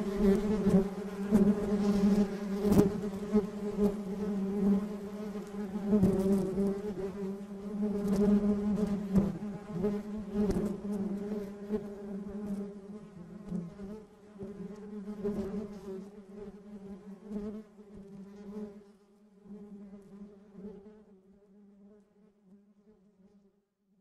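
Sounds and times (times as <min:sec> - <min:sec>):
honeybees buzzing: 0:00.0 - 0:15.8.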